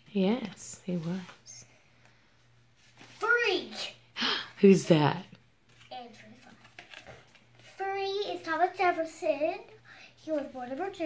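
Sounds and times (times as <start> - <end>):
young child speaking: 3.1 - 4.0, 5.9 - 6.7, 7.6 - 11.0.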